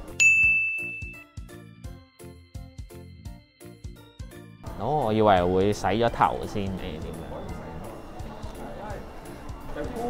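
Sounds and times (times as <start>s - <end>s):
background music with steady beat: 0.0s - 10.0s
bell-like ding: 0.2s - 1.4s.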